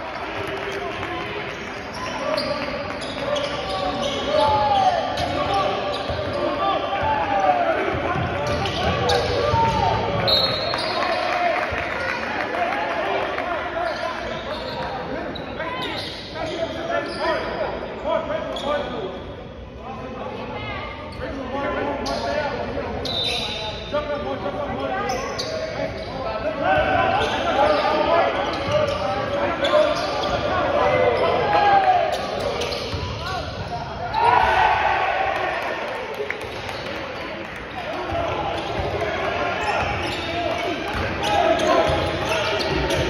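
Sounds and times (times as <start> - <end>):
voices of players and spectators: 0.0 - 43.0.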